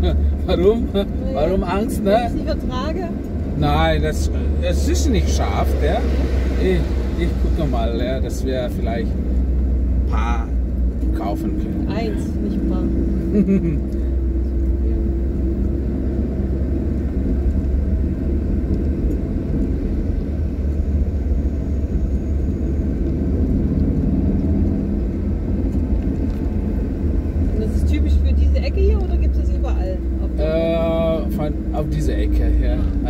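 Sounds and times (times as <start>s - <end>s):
car engine and road rumble: 0.0s - 33.0s.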